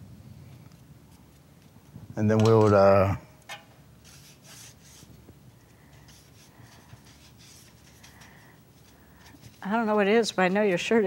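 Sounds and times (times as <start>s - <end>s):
paintbrush swishing on paper: 4.0s - 5.2s, 6.1s - 8.1s.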